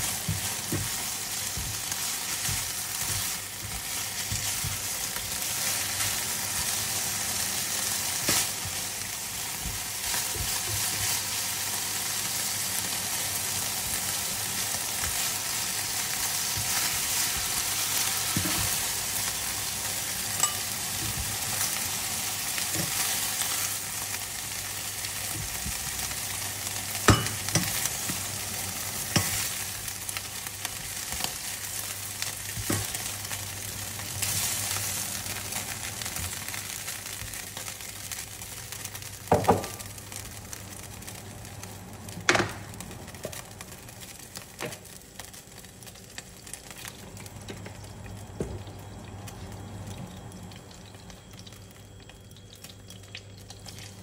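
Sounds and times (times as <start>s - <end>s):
beef sizzling in a frying pan: 0.0s - 54.0s.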